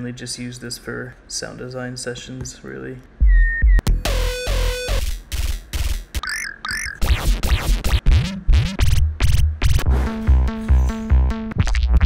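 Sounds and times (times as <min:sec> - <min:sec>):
synth bass arpeggio: 0:03.3 - 0:12.0.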